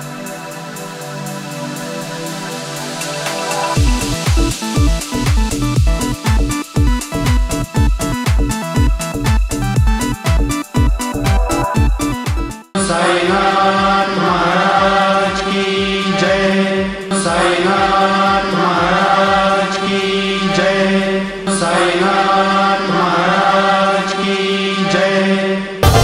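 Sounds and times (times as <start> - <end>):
loud theme music: 0.0 - 12.7
rhythmic music: 0.0 - 12.8
devotional chant over drone: 12.8 - 25.8.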